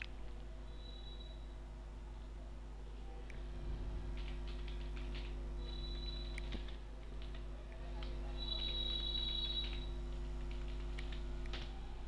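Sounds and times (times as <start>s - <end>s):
low electrical hum: 0.0s - 12.0s
computer keyboard keystrokes: 4.2s - 5.4s, 6.2s - 11.8s.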